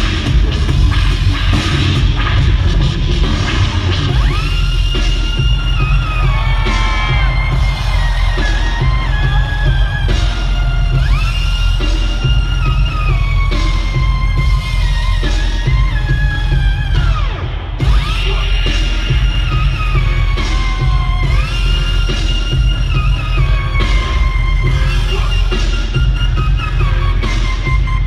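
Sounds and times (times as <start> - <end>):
electronic bass music: 0.0 - 28.0.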